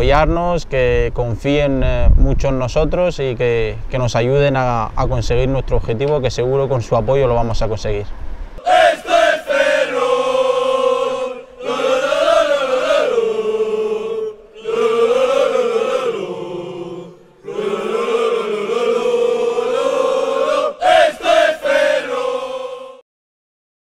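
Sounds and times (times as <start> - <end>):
voices chanting together: 8.6 - 23.0.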